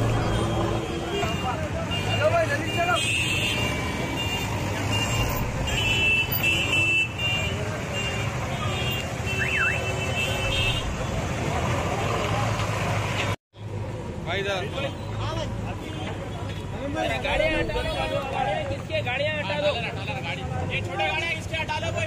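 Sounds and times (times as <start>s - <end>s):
high-pitched vehicle horns beeping: 0.0s - 11.2s
street traffic: 0.0s - 22.0s
crowd chatter: 15.8s - 19.0s.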